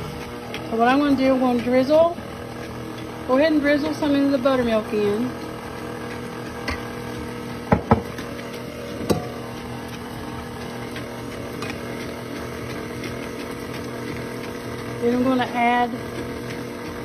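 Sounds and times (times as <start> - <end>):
stand mixer motor hum: 0.0 - 17.0.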